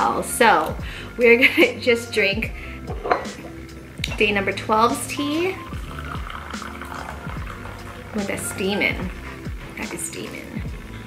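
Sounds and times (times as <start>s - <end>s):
background music: 0.0s - 11.0s
tea pouring into a teacup: 5.2s - 10.9s.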